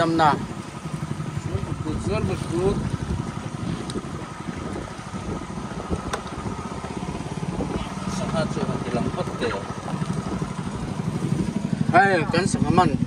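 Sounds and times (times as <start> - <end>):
boat engine running: 0.0 - 13.0.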